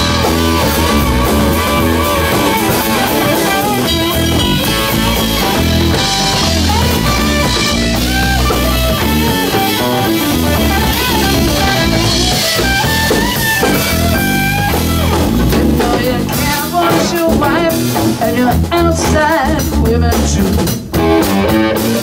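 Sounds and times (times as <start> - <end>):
bass guitar: 0.0 - 22.0
drum kit: 0.0 - 22.0
electric guitar lead with bent notes: 0.0 - 22.0.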